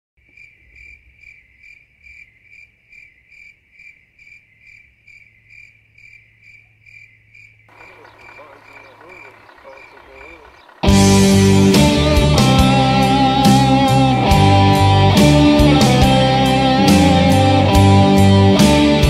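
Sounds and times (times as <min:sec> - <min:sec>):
crickets chirping: 0:00.2 - 0:11.0
outdoor background sound: 0:00.2 - 0:19.0.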